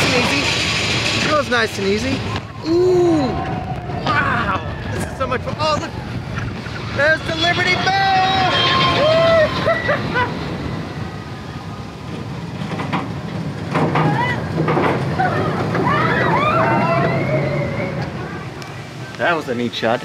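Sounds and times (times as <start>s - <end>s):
roller coaster rumbling on track: 0.0s - 20.0s
riders yelling and whooping: 7.3s - 10.8s, 14.0s - 18.5s.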